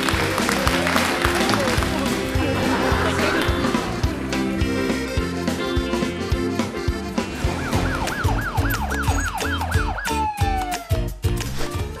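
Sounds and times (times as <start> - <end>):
jingle music with steady beat: 3.6 - 11.4
siren-like sweeping tone: 7.4 - 10.6.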